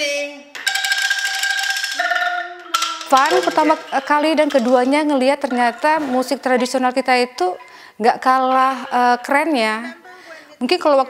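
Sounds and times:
bamboo angklung rattling: 0.6s - 7.2s.

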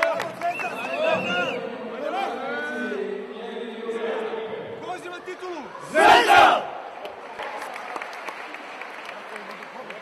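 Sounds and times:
hall chatter: 5.0s - 7.4s
men shouting a cheer: 5.9s - 6.6s.

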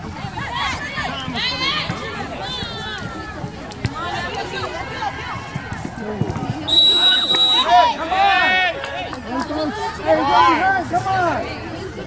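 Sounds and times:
people shouting: 7.0s - 8.8s.

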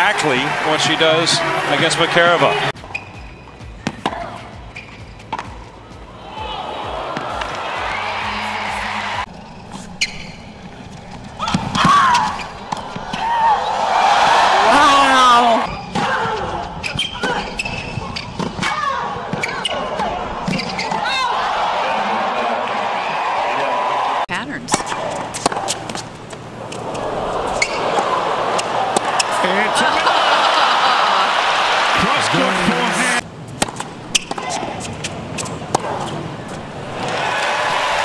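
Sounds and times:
crowd cheering and shouting: 0.0s - 2.7s, 5.9s - 9.3s, 11.4s - 24.3s, 26.6s - 33.2s, 36.8s - 38.0s
crowd noise: 0.0s - 38.0s
racquet hitting tennis ball: 3.8s - 5.6s, 9.6s - 15.0s, 24.7s - 29.4s, 33.6s - 37.8s.

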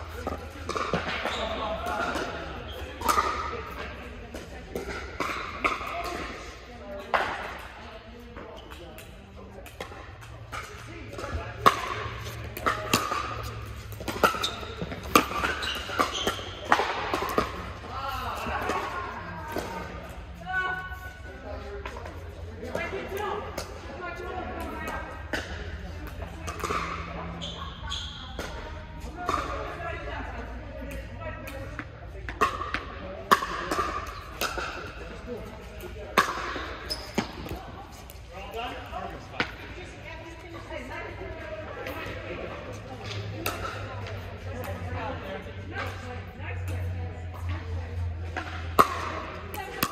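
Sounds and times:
voices: 0.0s - 49.9s.

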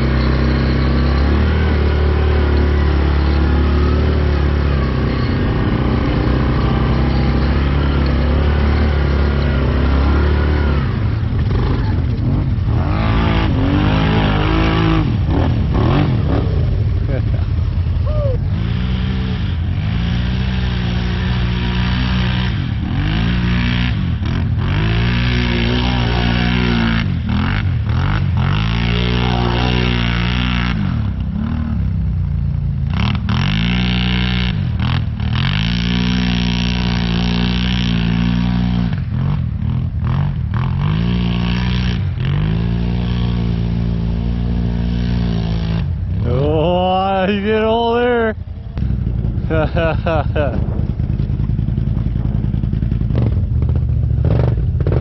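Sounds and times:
atv engine revving: 0.0s - 55.0s.

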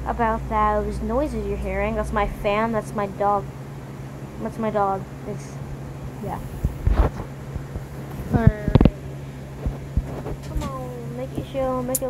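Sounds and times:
electric fan humming: 0.0s - 12.0s.

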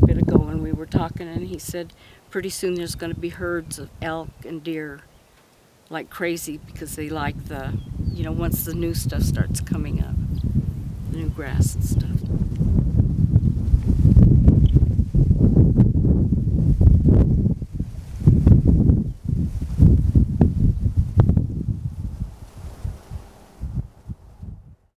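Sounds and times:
wind buffeting microphone: 0.0s - 4.5s, 6.5s - 24.9s
grass rustling: 17.1s - 24.6s.

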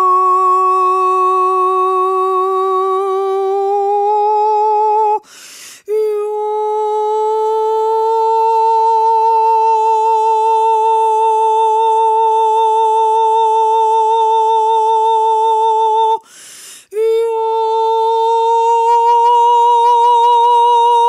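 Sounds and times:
woman singing long wordless note: 0.0s - 5.3s, 5.9s - 16.3s, 16.9s - 21.0s.

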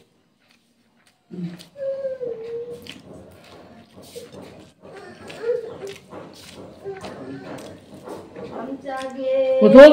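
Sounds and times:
person chewing food: 0.0s - 9.2s.

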